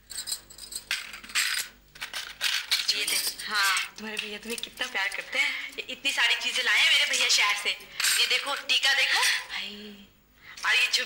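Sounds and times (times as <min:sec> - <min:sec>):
jewellery clinking and jingling: 0:00.0 - 0:03.9.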